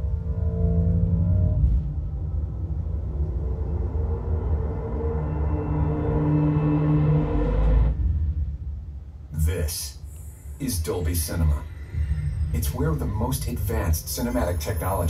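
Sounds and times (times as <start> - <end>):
dark ambient drone: 0.0 - 15.0
deep bass surge: 0.0 - 15.0.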